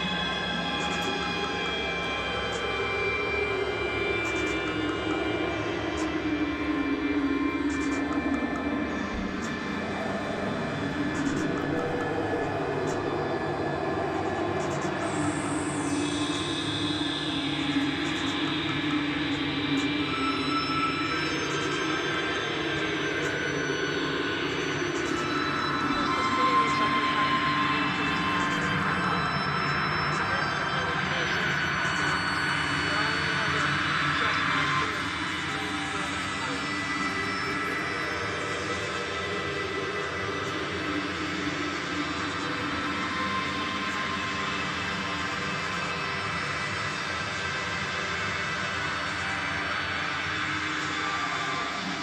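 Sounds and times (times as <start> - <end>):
synthesizer drone: 0.0 - 52.0.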